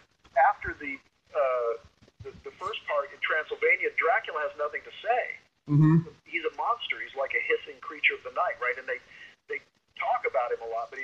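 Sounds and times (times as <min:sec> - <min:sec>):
person talking: 0:00.4 - 0:09.1.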